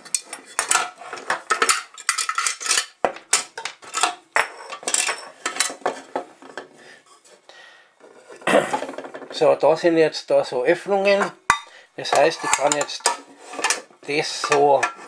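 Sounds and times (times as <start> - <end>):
metal pot and lids clinking: 0.0 - 6.6, 11.2 - 15.0
metal pot clattering: 0.0 - 6.7, 8.3 - 9.4, 11.2 - 15.0.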